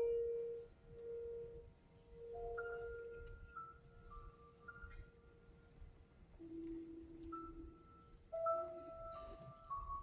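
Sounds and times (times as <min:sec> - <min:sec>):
soft grand piano notes: 0:00.0 - 0:10.0.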